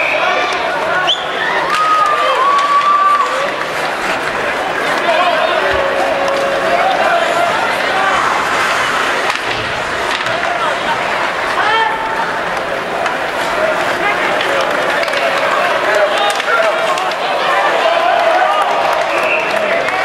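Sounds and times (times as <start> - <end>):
crowd shouting and talking: 0.0 - 20.0
skates and sticks scraping ice: 1.6 - 20.0.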